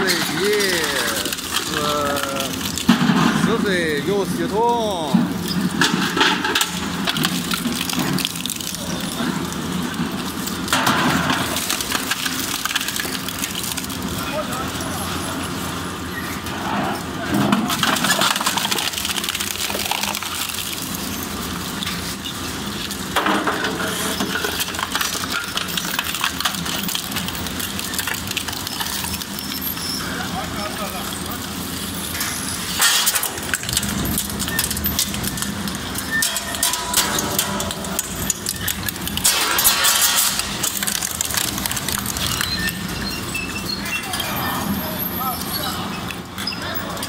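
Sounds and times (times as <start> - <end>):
sheet metal crunching and clattering: 32.7 - 43.7
loud cracks: 32.8 - 42.5.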